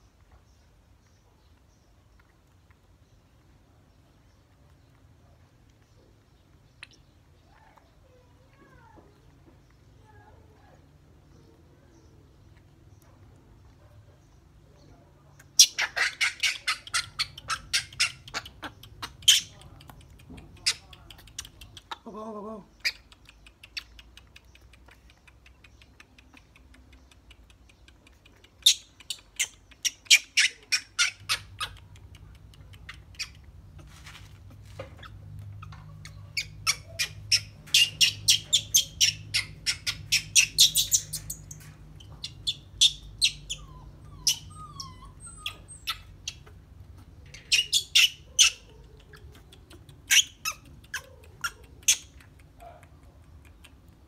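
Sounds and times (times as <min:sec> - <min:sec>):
high-pitched animal chirps: 0:15.6 - 0:19.6, 0:28.6 - 0:32.0, 0:35.0 - 0:46.6, 0:47.3 - 0:52.4.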